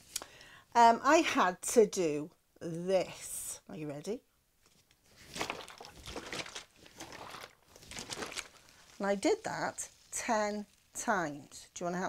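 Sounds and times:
plastic bottle crinkling: 4.7s - 11.0s
water sloshing in bottle: 5.1s - 9.4s.

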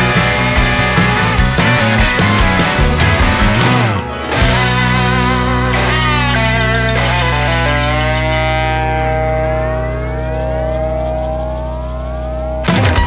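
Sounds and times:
band hit with drums and cymbals: 0.0s - 6.5s, 12.7s - 13.0s
country-rock band closing chord: 0.0s - 13.0s
rising pitch glides: 1.7s - 13.0s.

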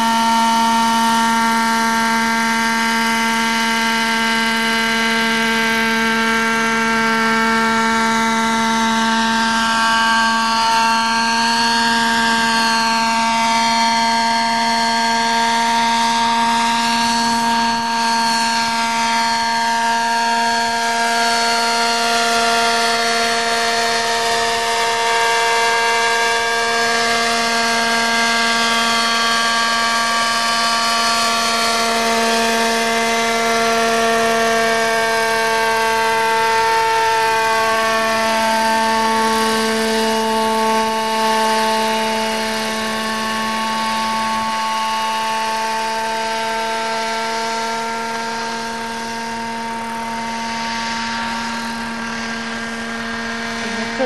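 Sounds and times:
model helicopter motor and rotor hum: 0.0s - 54.0s.

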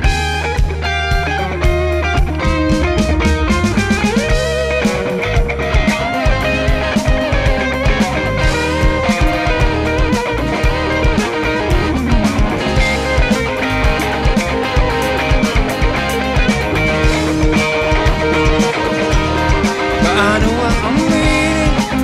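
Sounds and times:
drum kit beat: 0.0s - 22.0s
electric bass: 0.0s - 22.0s
electric guitars ringing: 0.0s - 22.0s.

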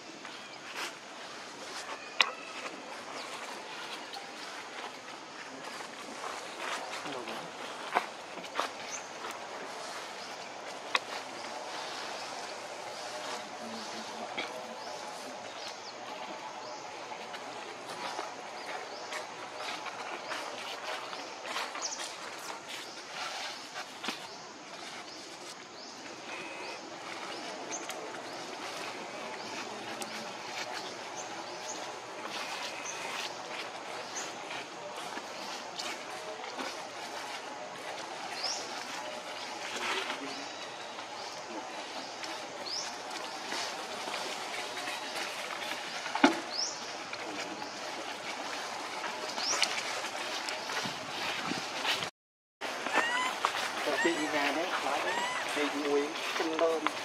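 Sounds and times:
steady woodland hiss: 0.0s - 52.0s, 52.6s - 57.0s.

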